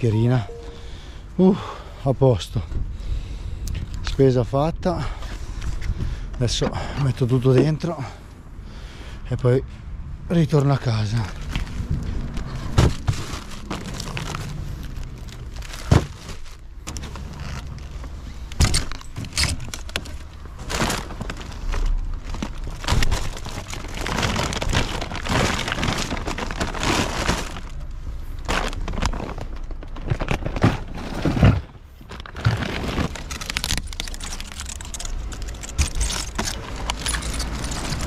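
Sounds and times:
plastic bags rustling: 11.0 - 38.0.

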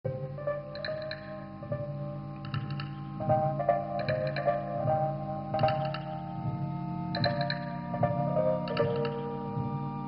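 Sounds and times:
plucked guitar-like music: 0.4 - 9.8
high ticks: 0.7 - 1.4, 2.4 - 3.2, 5.6 - 6.2, 8.6 - 9.3.

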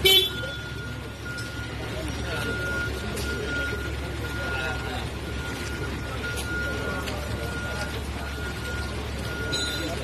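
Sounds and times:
vehicle horn toot: 0.0 - 0.6
murmur of voices: 0.0 - 10.0
road traffic rumble: 0.0 - 10.0.

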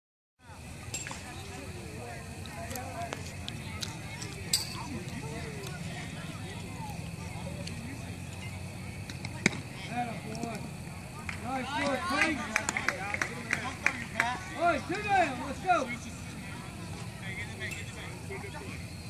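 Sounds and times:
indistinct chatter: 0.4 - 19.0.

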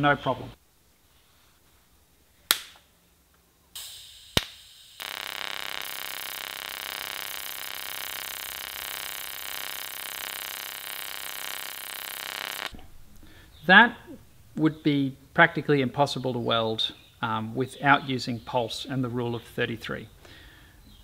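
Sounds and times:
welding arc hiss and buzz: 3.7 - 12.8.

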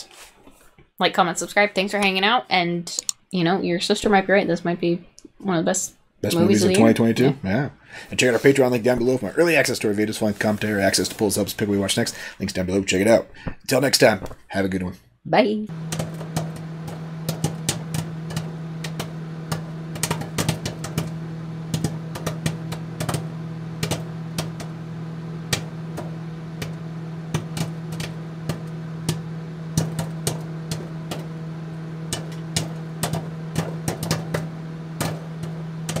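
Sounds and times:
steady low hum: 15.7 - 36.0
clicks and crackles: 25.5 - 31.4, 32.1 - 36.0.

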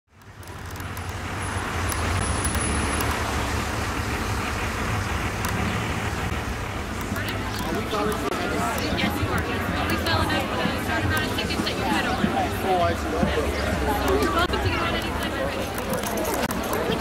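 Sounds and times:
road traffic noise: 0.1 - 17.0
people's voices: 0.2 - 17.0.

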